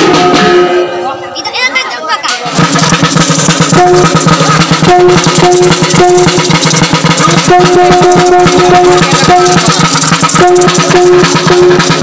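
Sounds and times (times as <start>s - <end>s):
drum beaten rapidly with sticks: 0.0s - 1.0s, 2.2s - 12.0s
ringing gongs: 3.4s - 12.0s
held gong note: 3.7s - 12.0s.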